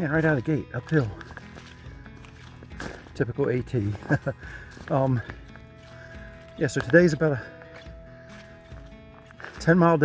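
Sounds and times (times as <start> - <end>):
footsteps on dirt trail: 0.0 - 10.0
soft background music: 0.0 - 10.0
hard breath: 4.4 - 6.6, 7.4 - 9.6.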